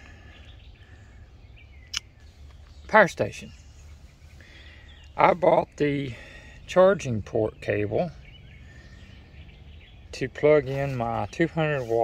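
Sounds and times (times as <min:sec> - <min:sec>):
faint bird chirps: 0:00.0 - 0:12.0
low steady hum: 0:00.0 - 0:12.0.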